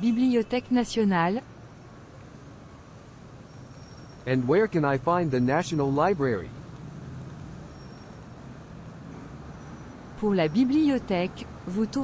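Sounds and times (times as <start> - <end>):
city street traffic hum: 0.0 - 12.0.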